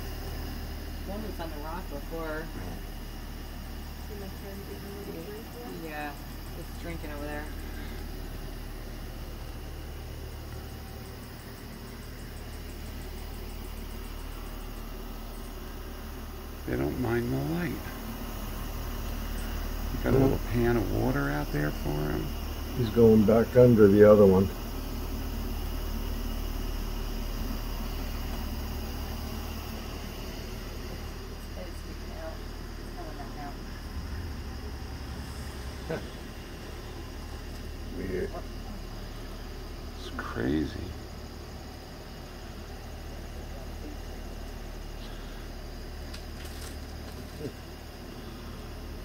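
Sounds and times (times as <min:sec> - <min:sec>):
insects trilling: 0:00.0 - 0:49.0
low hum: 0:00.0 - 0:49.0.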